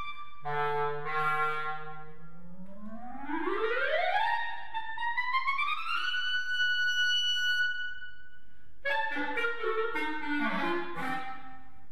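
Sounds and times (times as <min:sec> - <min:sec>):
solo clarinet playing: 0:00.0 - 0:03.0, 0:03.9 - 0:08.2, 0:08.8 - 0:11.9.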